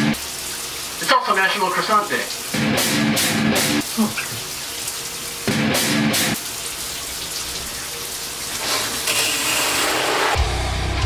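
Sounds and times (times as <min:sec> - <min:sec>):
shower water running: 0:00.0 - 0:10.4
heavy metal music: 0:02.5 - 0:03.8, 0:05.5 - 0:06.4, 0:10.2 - 0:11.0.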